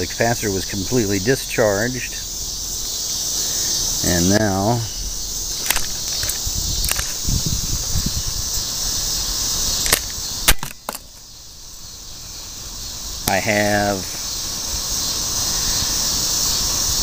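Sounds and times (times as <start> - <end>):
crickets chirping: 0.0 - 17.0
multimeter probe clicks and knocks: 5.6 - 7.2.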